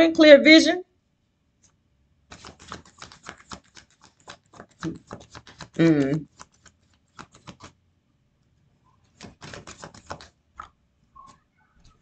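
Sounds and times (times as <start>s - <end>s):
cards being shuffled: 1.6s - 7.8s, 9.0s - 12.0s.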